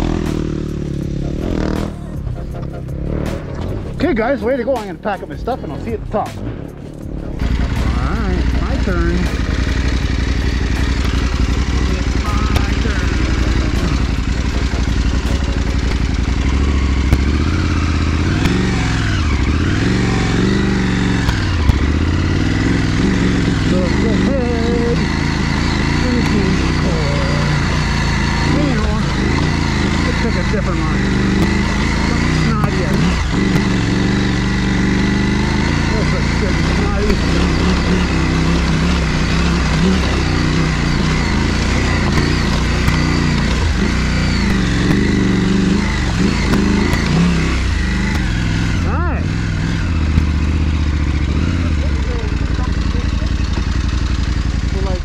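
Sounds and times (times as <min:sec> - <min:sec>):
motorcycle engine revving: 0:00.0 - 0:55.0
tyres knocking on rocks: 0:31.3 - 0:33.9.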